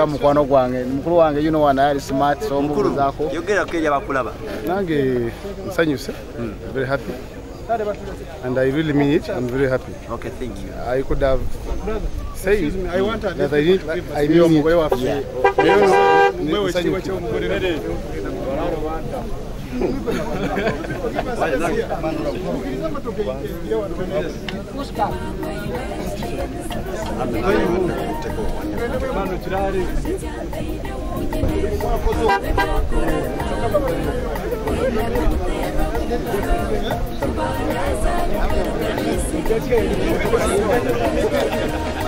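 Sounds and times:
crowd talking: 0.0s - 42.0s
background music: 14.1s - 16.8s, 24.2s - 42.0s
vehicle horn honk: 14.9s - 16.4s, 32.2s - 32.8s.

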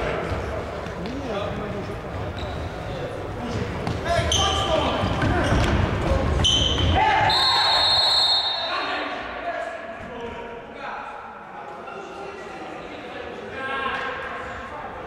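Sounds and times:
short high whistle peeps: 6.5s - 8.7s.

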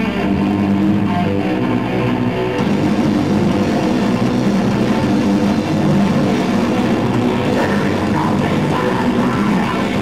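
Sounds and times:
distorted metal band playing: 0.0s - 10.0s.

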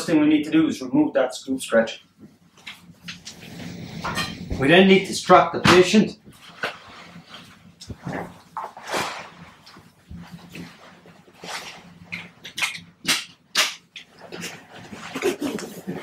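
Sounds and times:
vinyl cover rustling: 6.4s - 11.9s.

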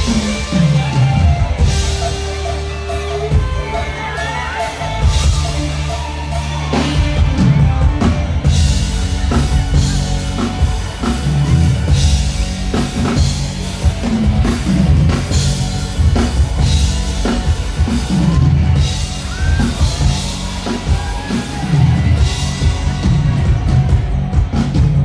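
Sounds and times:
bass guitar: 0.0s - 25.0s
drum kit beat: 0.0s - 25.0s.

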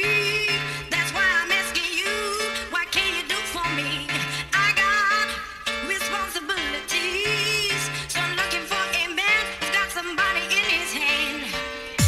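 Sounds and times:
house music track: 0.0s - 12.0s.

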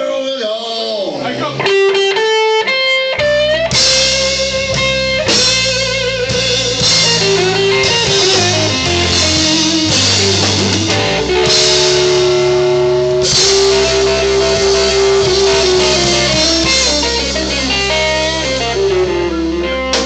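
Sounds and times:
electric guitar notes: 1.2s - 20.0s
drum kit: 1.4s - 20.0s
low bass notes: 3.1s - 20.0s.

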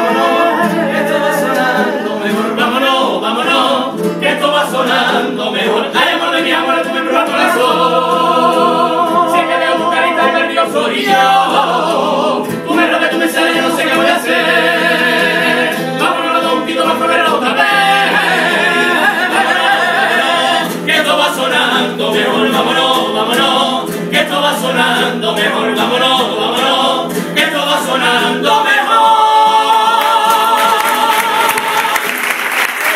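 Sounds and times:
men singing in harmony: 0.0s - 32.2s
guitar: 0.0s - 32.9s.

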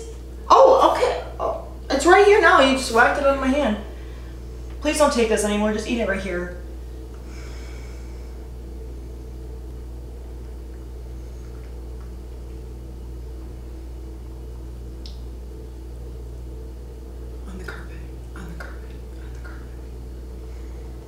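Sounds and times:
low room hum: 0.0s - 21.0s
faint soft clicks: 15.0s - 15.2s.

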